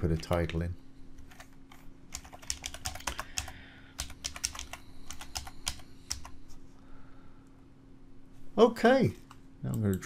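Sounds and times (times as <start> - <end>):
faint steady hum: 0.0 - 10.0
typing on keyboard: 2.1 - 6.3.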